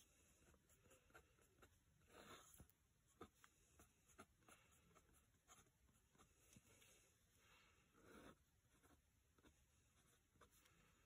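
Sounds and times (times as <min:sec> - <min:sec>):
pencil scratching on paper: 0:00.0 - 0:07.0, 0:07.9 - 0:11.0.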